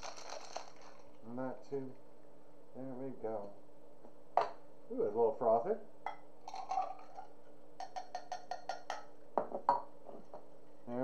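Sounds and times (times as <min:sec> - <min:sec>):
drink poured over ice: 0:00.0 - 0:01.2.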